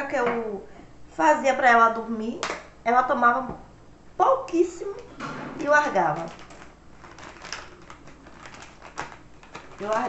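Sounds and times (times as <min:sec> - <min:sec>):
plastic packaging crinkling: 0:05.6 - 0:10.0.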